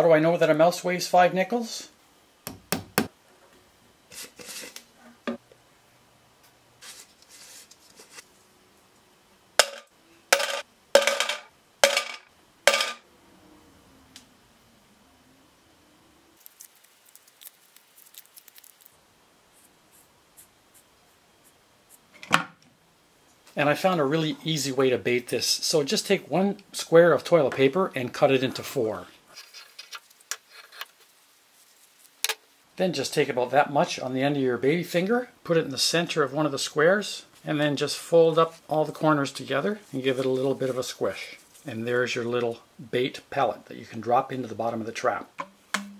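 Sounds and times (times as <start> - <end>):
coins dropping into plastic jar: 9.6 - 13.0.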